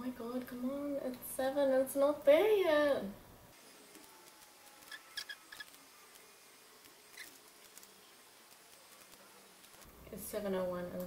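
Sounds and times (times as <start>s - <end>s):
faint high-pitched squeaks: 3.8s - 9.8s.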